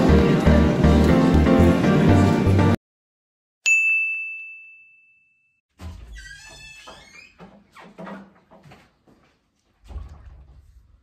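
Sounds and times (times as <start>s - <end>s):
bright bell-like chime: 3.7s - 5.6s.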